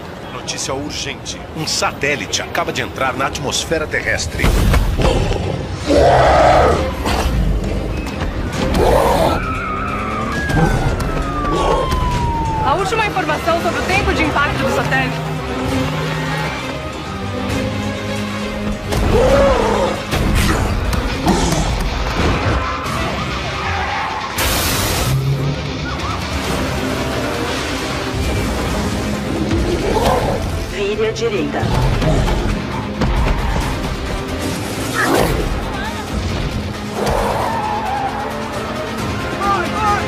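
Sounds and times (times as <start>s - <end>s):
music: 3.4s - 40.0s
tyres skidding and squealing: 5.6s - 20.1s, 21.6s - 30.8s, 31.5s - 40.0s.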